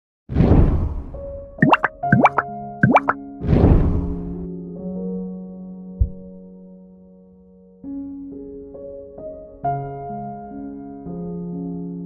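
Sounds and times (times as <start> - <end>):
quick rising plops: 1.6 - 3.2.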